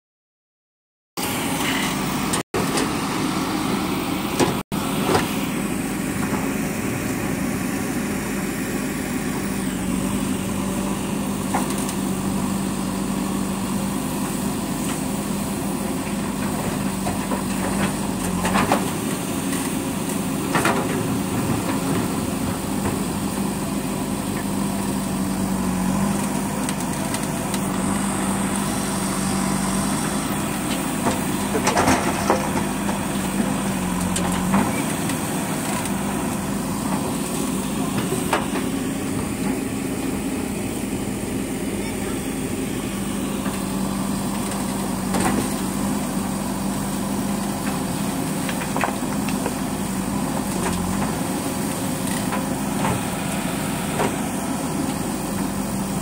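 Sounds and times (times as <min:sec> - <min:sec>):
diesel engine running under load: 0:01.2 - 0:56.0.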